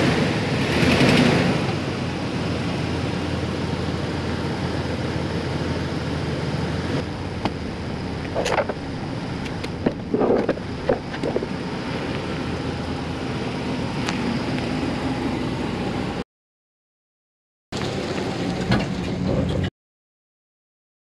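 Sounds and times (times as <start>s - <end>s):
truck engine rumbling: 0.0s - 16.2s, 17.8s - 19.7s.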